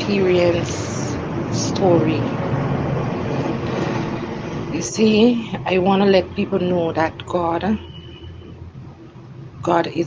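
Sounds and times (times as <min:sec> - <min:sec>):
road and engine noise in car: 0:00.0 - 0:10.0.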